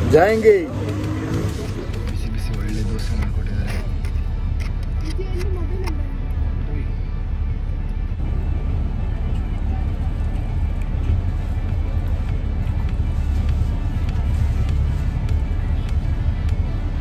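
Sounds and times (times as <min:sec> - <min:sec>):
bus rumbling: 0:00.0 - 0:17.0.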